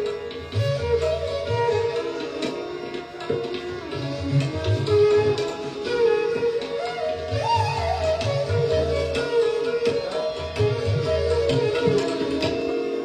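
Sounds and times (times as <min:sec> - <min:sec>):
tabla drum strokes: 0:00.0 - 0:13.0
bamboo flute long note: 0:04.8 - 0:13.0.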